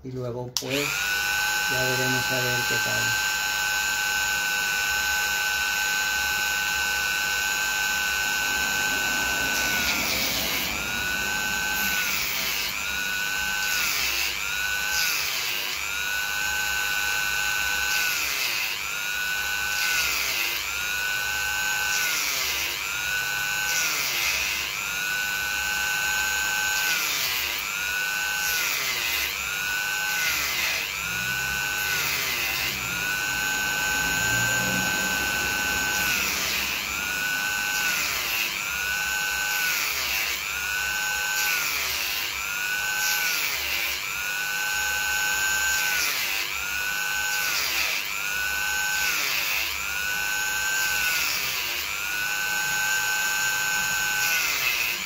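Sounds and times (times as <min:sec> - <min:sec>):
rotary tool cutting shell: 0:00.6 - 0:55.0.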